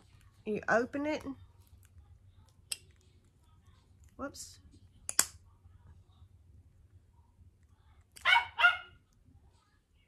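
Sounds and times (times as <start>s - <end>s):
dog barking: 8.2s - 9.0s.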